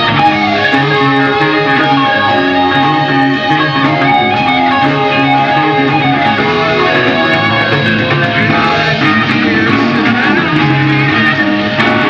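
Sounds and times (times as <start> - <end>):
electric guitar: 0.0 - 12.0
rock band playing live: 0.0 - 12.0.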